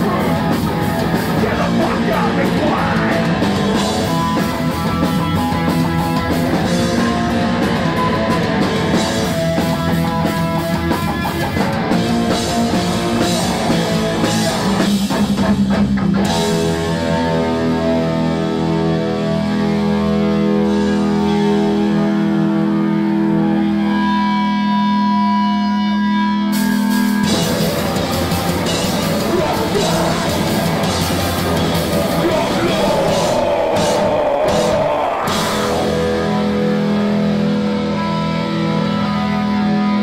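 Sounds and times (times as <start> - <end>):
live punk rock band: 0.0 - 40.0.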